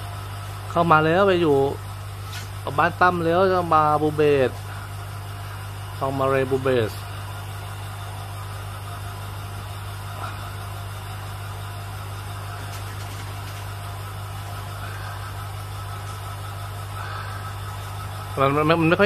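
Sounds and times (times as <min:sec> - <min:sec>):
aquarium pump humming: 0:00.0 - 0:19.0.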